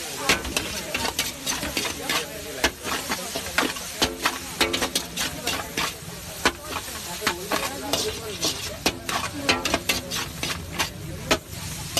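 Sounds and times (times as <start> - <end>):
food sizzling: 0.0 - 11.9
metal spatulas scraping griddle: 0.0 - 11.9.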